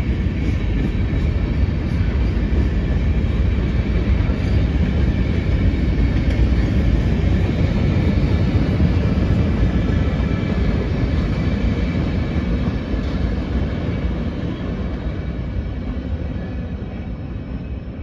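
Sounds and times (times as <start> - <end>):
freight train cars rolling past: 0.0 - 18.0.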